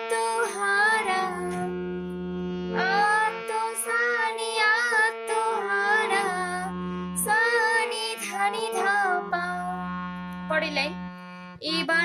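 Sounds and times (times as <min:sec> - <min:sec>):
person singing with vibrato: 0:00.0 - 0:01.8, 0:02.7 - 0:09.9, 0:11.6 - 0:12.0
harmonium melody: 0:00.0 - 0:12.0.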